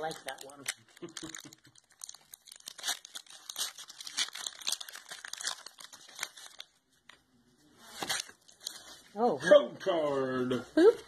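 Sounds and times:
foil wrapper crinkling and tearing: 0.0 - 6.8, 7.9 - 9.0.

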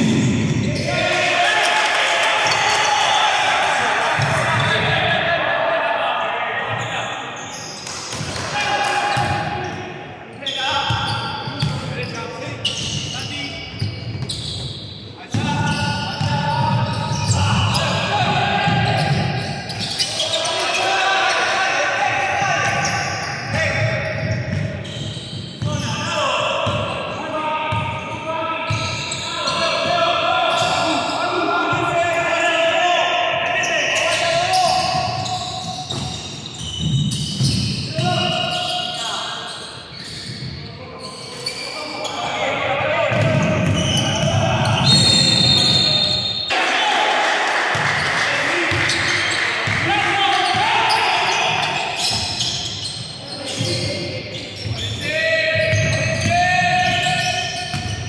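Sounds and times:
players calling out: 0.1 - 58.0.

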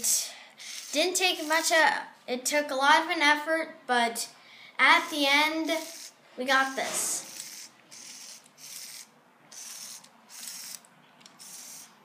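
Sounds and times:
motor and plastic gears whirring: 0.6 - 1.6, 6.8 - 12.0.

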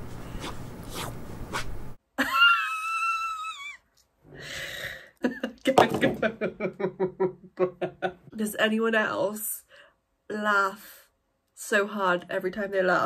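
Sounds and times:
woman laughing: 2.2 - 3.9, 4.7 - 8.4.

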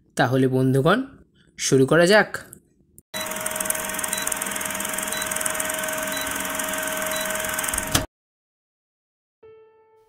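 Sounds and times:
film projector whirring: 3.2 - 8.1.

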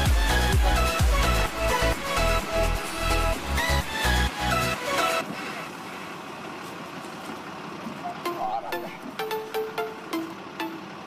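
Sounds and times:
engine running with hiss: 0.0 - 11.0.

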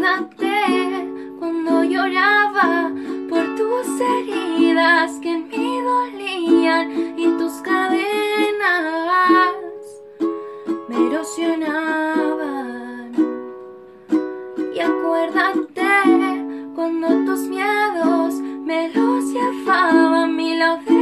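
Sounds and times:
ukulele strumming chords: 0.0 - 21.0.

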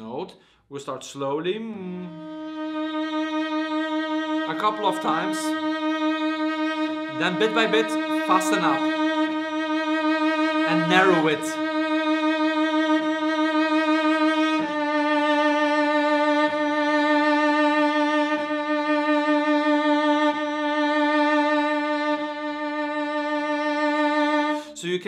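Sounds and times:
cello bowed note with vibrato: 1.8 - 24.6.

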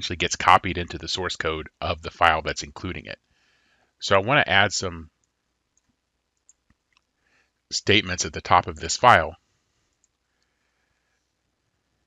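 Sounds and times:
faint clicks: 5.2 - 7.1, 9.8 - 10.6.

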